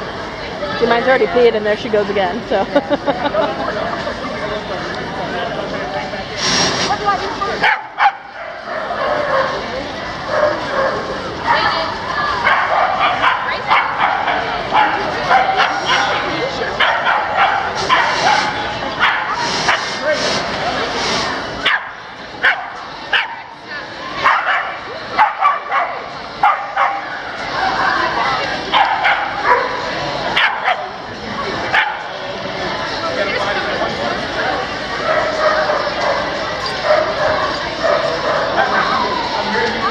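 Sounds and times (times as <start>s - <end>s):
crowd chatter: 0.0s - 39.9s
dogs barking: 7.6s - 9.6s, 10.2s - 11.8s, 12.4s - 19.9s, 21.6s - 23.5s, 24.2s - 27.2s, 28.7s - 30.9s, 31.7s - 32.1s, 35.0s - 38.9s.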